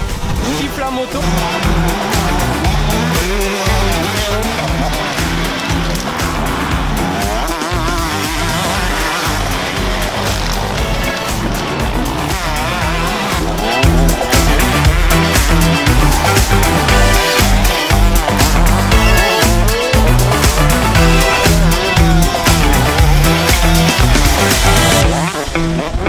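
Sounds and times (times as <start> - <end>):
motocross bike revving: 0.0 - 26.0
music with a steady beat: 1.2 - 26.0.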